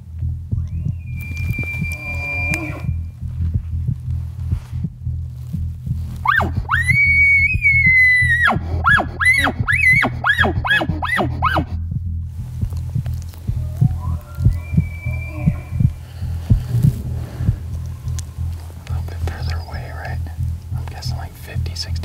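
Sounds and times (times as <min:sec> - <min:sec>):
background music with pulsing beat: 0:00.0 - 0:22.0
faint high whistle: 0:00.6 - 0:03.0, 0:13.8 - 0:15.9
elk bugle call: 0:01.1 - 0:02.9, 0:06.2 - 0:11.8.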